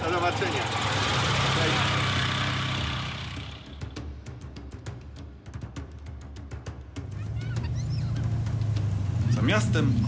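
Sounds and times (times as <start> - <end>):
small car engine running: 0.0 - 4.0, 7.0 - 10.0
music with sharp drum hits: 3.6 - 9.2.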